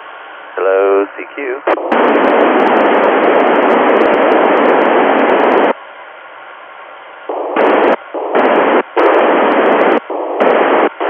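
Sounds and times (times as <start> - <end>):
low radio hiss: 0.0 - 11.0
loud radio static: 0.5 - 5.8, 7.3 - 11.0.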